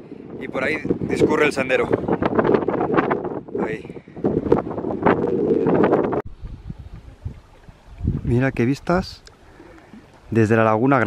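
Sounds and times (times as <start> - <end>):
wind buffeting microphone: 0.0 - 9.3
faint low wind rumble: 0.0 - 11.0.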